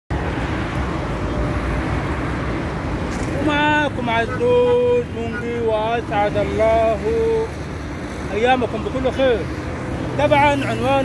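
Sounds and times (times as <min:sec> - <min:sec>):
road traffic rumble: 0:00.1 - 0:11.0.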